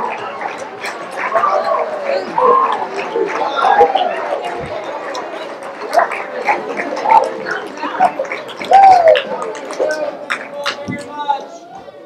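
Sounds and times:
voices shouting and whooping: 0.0 - 5.0, 6.9 - 12.0
audience clapping and cheering: 0.0 - 11.5.

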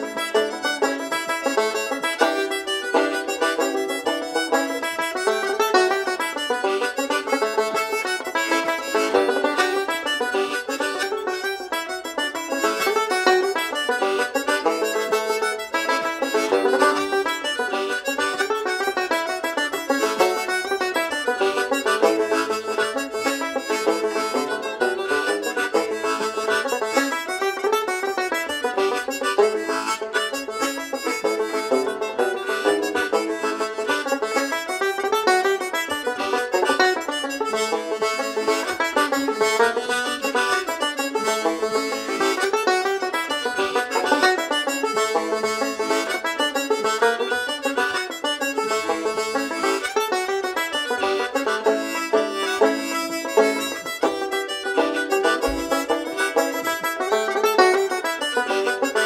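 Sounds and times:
banjo: 0.0 - 59.0
harmonica: 0.0 - 59.0.

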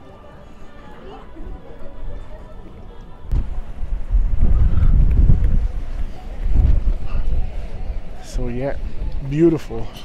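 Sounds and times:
wind buffeting microphone: 3.3 - 9.6.

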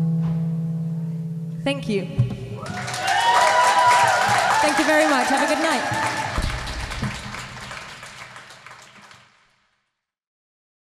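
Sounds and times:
audience applauding: 2.6 - 9.7.

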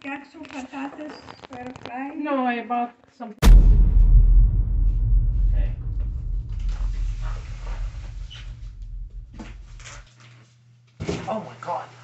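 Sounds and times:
knocks and scrapes: 5.4 - 10.0.

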